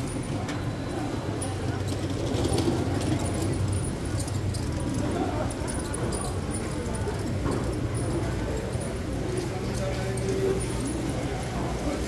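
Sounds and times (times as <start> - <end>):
chatter of shoppers and vendors: 0.0 - 12.0.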